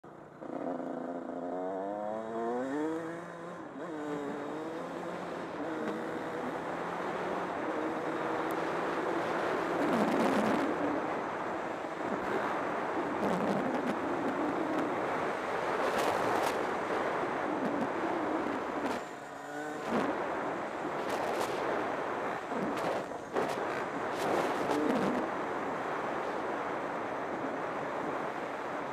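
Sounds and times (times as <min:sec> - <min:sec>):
wind rush on helmet camera: 0:00.2 - 0:28.9.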